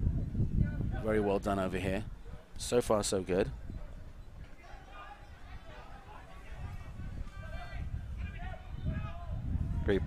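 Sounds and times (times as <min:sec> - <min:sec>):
players shouting: 0:04.4 - 0:09.4.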